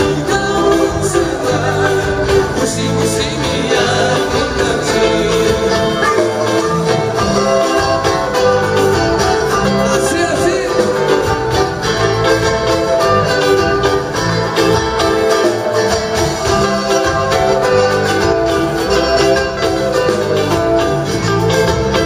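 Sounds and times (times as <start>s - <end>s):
latin band music: 0.0s - 22.0s.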